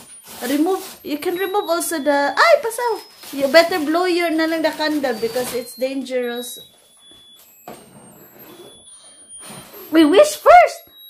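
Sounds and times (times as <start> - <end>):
high electronic candle tune: 0.0 - 11.0.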